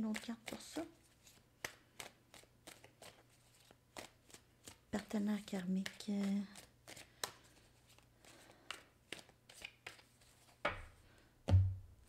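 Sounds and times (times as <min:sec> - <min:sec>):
cards being shuffled: 0:00.1 - 0:10.9.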